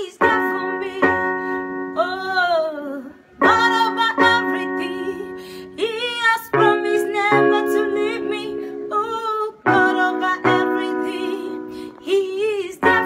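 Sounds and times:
electronic keyboard chords: 0:00.0 - 0:13.0
woman singing: 0:00.0 - 0:13.0.

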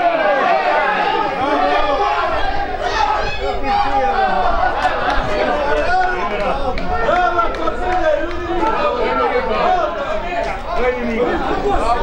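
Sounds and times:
crowd shouting and chattering: 0:00.0 - 0:12.0.

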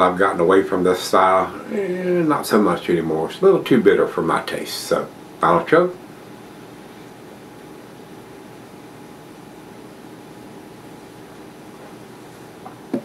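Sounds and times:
faint room hum: 0:00.0 - 0:13.0.

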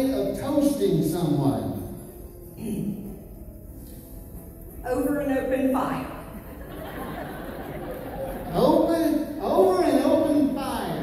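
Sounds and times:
audience chatter and murmur: 0:06.1 - 0:11.0.

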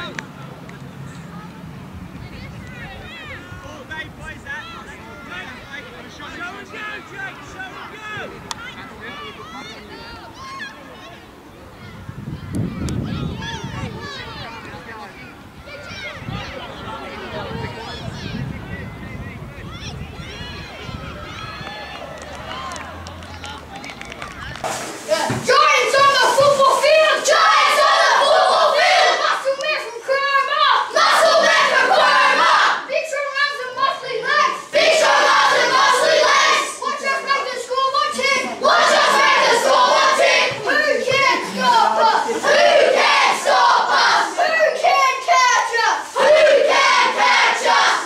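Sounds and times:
distant shouts of players and spectators: 0:00.0 - 0:48.0
boys shouting together: 0:25.1 - 0:48.0.

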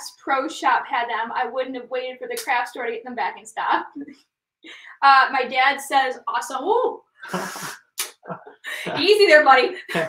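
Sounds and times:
woman laughing: 0:08.3 - 0:10.0.

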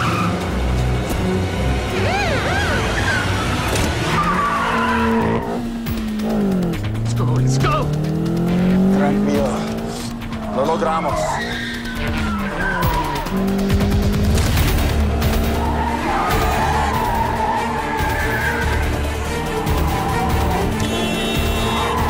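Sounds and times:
tires squealing on cobbles: 0:00.0 - 0:01.1, 0:01.9 - 0:05.6, 0:10.4 - 0:22.0
car engine revving hard: 0:00.0 - 0:10.1
film score music: 0:00.0 - 0:22.0.

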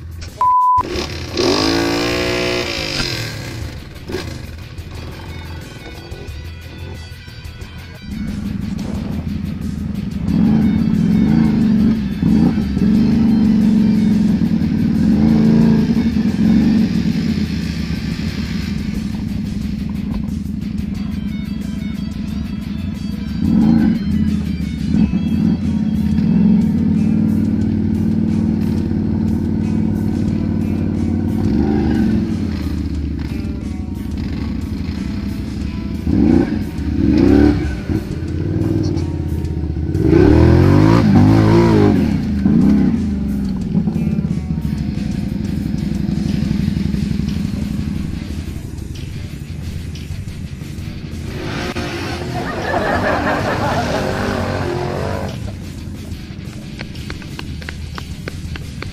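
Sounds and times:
atv engine revving: 0:00.0 - 0:58.9.

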